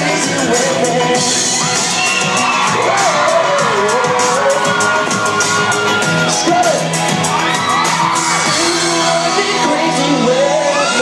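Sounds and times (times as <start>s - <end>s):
man singing into microphone: 0.0s - 1.8s, 2.8s - 5.2s, 8.4s - 11.0s
loud backing track with beat: 0.0s - 11.0s.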